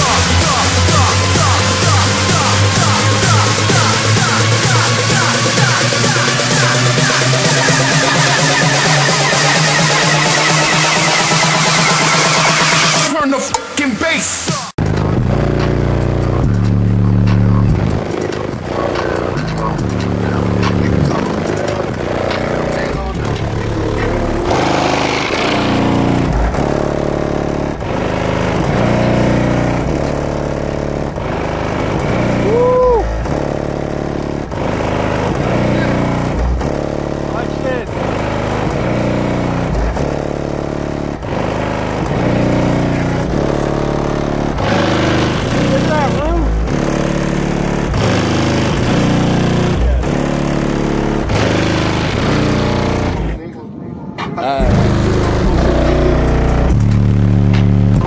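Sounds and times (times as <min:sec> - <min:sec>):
bass-heavy music through subwoofers: 0:00.0 - 0:53.5, 0:54.4 - 0:58.0.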